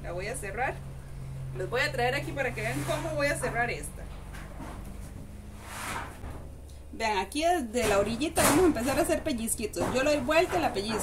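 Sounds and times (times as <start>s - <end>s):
low steady hum: 0.0s - 11.0s
faint rustling near microphone: 2.1s - 6.9s.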